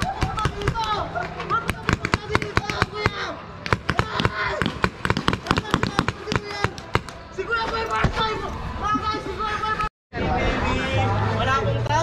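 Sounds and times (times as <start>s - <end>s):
people shouting: 0.0s - 9.8s.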